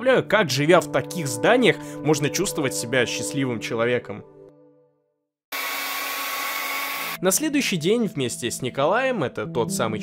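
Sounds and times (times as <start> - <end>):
hair dryer blowing: 5.5 - 7.2.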